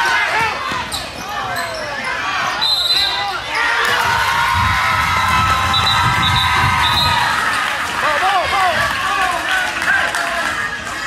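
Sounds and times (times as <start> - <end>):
referee's whistle: 2.6 - 3.4, 5.7 - 7.3.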